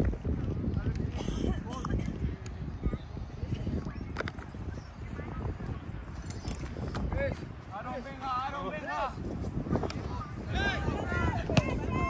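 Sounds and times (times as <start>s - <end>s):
players shouting calls: 10.0s - 12.0s.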